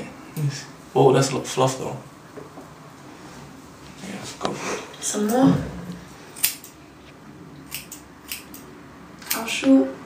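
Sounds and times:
scissors snipping beard: 6.4s - 6.8s, 7.7s - 9.5s.

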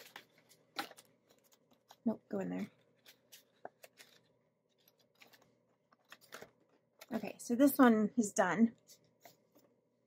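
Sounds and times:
cash being handled: 2.8s - 7.2s.

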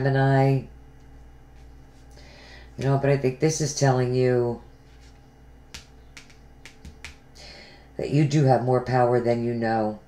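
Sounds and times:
fingernails tapping on cards: 5.0s - 7.3s.

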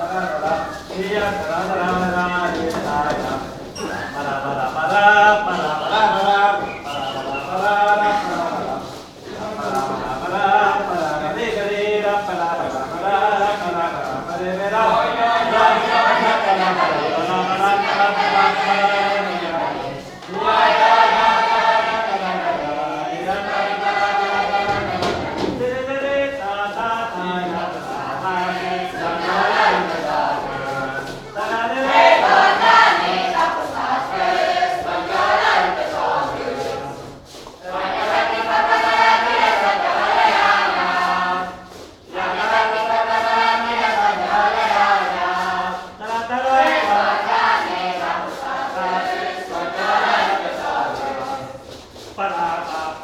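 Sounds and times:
voices singing a folk song: 0.0s - 53.0s.

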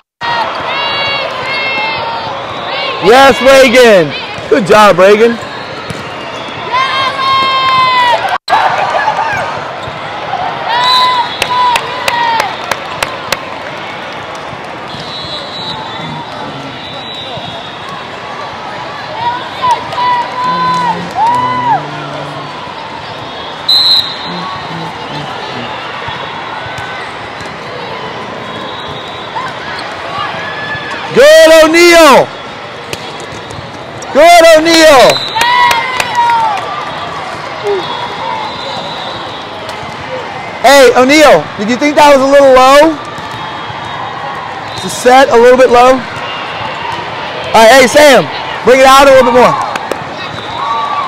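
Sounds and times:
crowd noise in a large hall: 0.0s - 51.0s
sneakers squeaking on a court: 32.3s - 34.0s.

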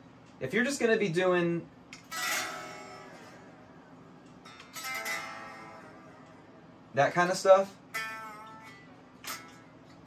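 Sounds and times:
electric guitar chords ringing: 2.0s - 10.0s.

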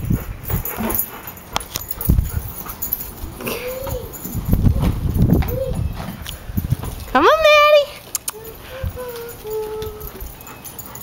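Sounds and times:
dog whining: 2.8s - 6.2s, 8.2s - 11.0s.

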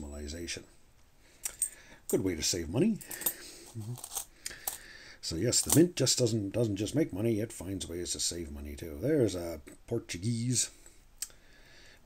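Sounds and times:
coins clinking on a table: 3.0s - 4.8s.

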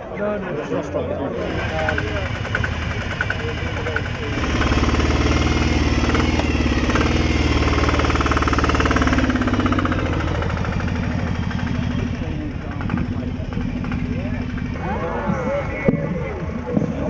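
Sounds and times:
diesel motorcycle idling: 1.3s - 17.0s.

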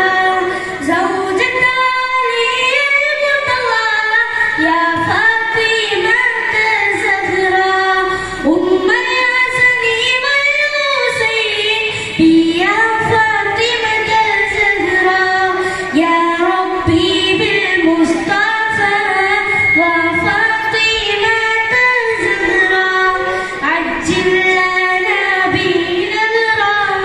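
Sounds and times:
boy singing into microphone: 0.0s - 27.0s.

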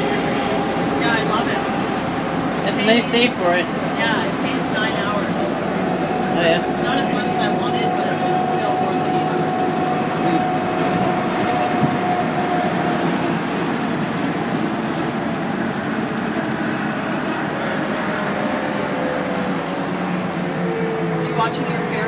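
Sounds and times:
bus engine and road drone: 0.0s - 22.0s.

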